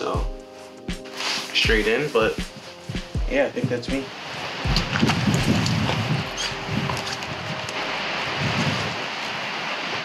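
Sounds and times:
footsteps outdoors: 0.2 - 7.9
wind buffeting microphone: 3.4 - 10.0.

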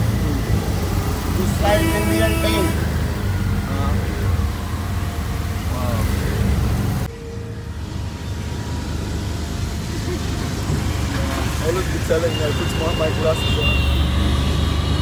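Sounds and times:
auto-rickshaw engine rumble: 0.0 - 15.0.

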